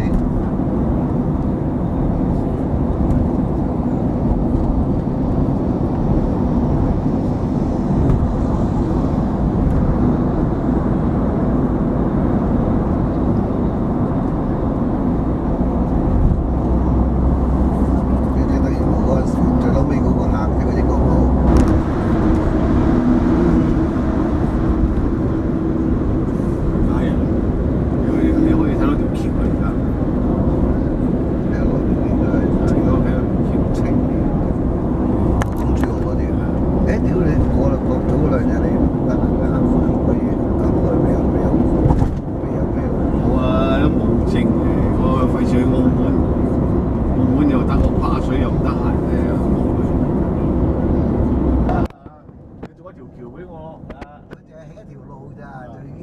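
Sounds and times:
car road and engine noise: 0:00.0 - 0:56.0.

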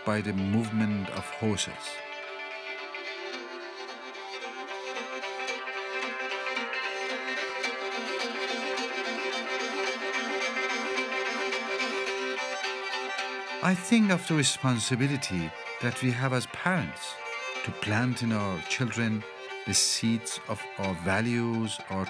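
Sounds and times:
bowed horsehead fiddle: 0:00.0 - 0:22.0.

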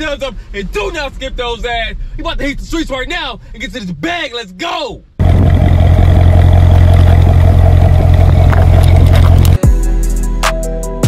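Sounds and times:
car engine droning: 0:05.2 - 0:09.6.

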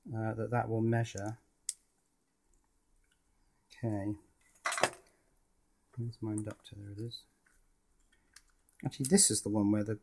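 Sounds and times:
hard objects clattering on workbench: 0:04.6 - 0:05.1.

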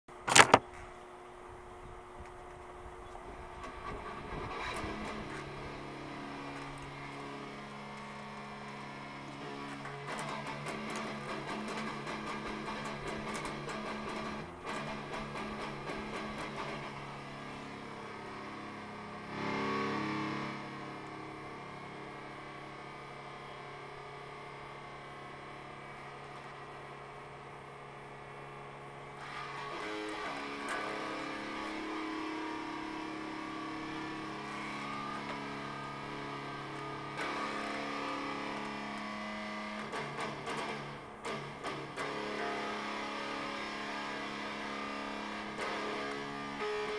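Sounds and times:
electric guitar playing: 0:03.4 - 0:46.9.

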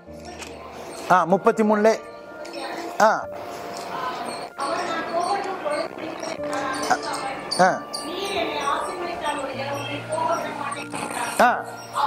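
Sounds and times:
background music: 0:00.0 - 0:12.0
voices talking: 0:00.1 - 0:12.0.

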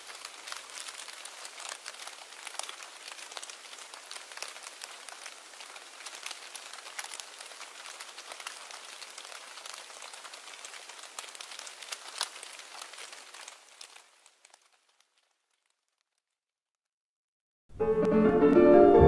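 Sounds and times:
blown snow ticking: 0:00.0 - 0:15.2.

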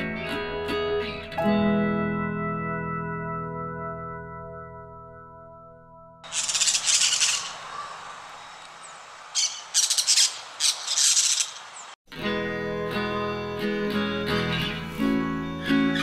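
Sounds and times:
acoustic guitar music: 0:00.0 - 0:05.3, 0:12.1 - 0:16.0
parakeet screeching: 0:06.3 - 0:08.1, 0:09.4 - 0:11.7.

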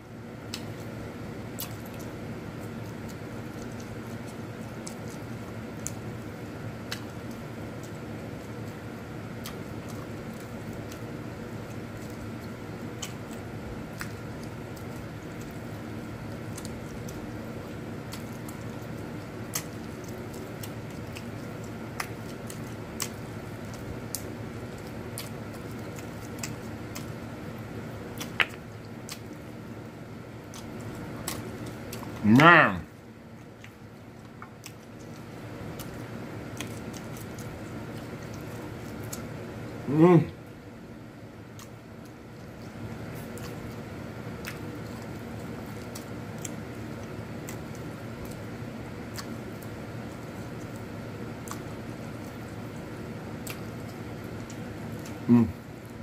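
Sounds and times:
steady background hum: 0:00.0 - 0:56.0
wet squishing of eating: 0:00.1 - 0:56.0.

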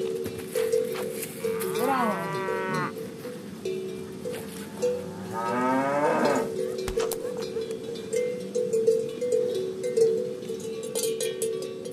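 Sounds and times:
cow mooing: 0:01.4 - 0:03.0, 0:05.0 - 0:06.6.

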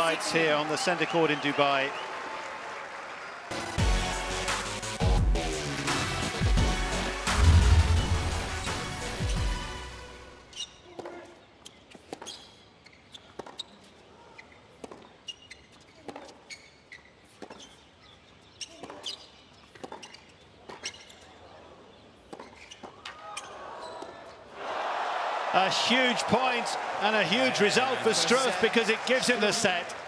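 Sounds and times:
crowd noise: 0:00.0 - 0:03.8, 0:23.5 - 0:30.0
ball bouncing on court: 0:10.9 - 0:11.3, 0:14.8 - 0:16.4, 0:18.6 - 0:21.2.

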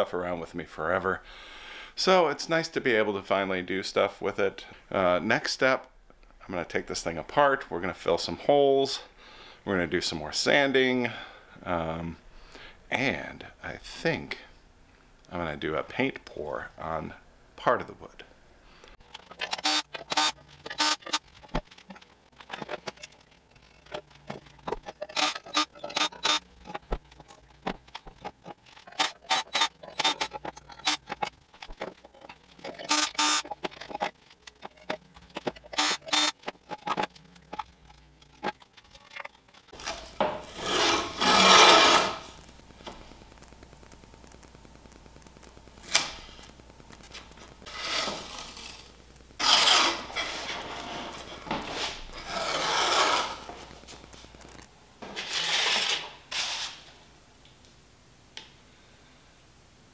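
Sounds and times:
tape ripping off roll: 0:39.7 - 0:43.0, 0:45.8 - 0:56.9.

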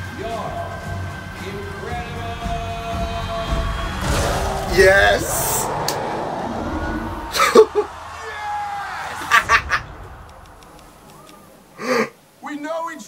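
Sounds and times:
trailer soundtrack over speakers: 0:00.0 - 0:11.7
man laughing: 0:07.3 - 0:08.1, 0:09.1 - 0:10.1.

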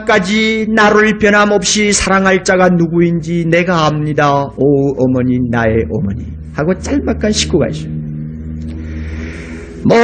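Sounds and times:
man speaking: 0:00.0 - 0:08.0
low recording hum: 0:00.0 - 0:10.0.

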